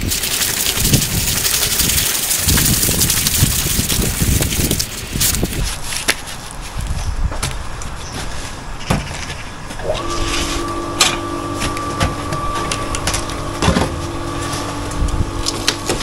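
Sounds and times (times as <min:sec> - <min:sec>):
two-tone machine hum: 0:09.8 - 0:16.0.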